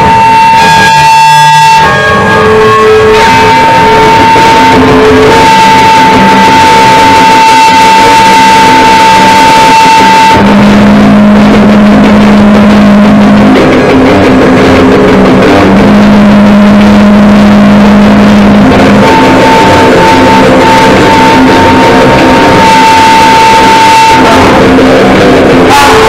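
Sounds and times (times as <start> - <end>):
held high tone: 0.0 - 14.4, 15.3 - 26.0
harsh distorted noise music: 0.0 - 26.0
low steady drone: 0.0 - 26.0.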